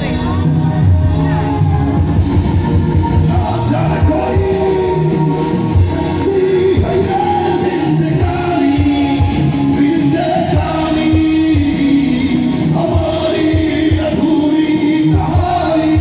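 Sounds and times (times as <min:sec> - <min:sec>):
backing music with drum beat: 0:00.0 - 0:16.0
man singing into microphone: 0:03.1 - 0:16.0.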